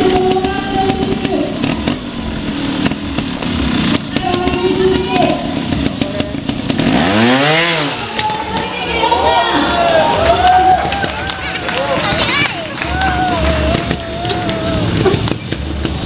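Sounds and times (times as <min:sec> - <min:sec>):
motorcycle engine revving: 0:00.0 - 0:16.0.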